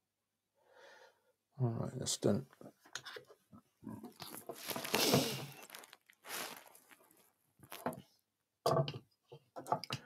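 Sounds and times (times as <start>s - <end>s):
short breath: 0.6s - 1.3s.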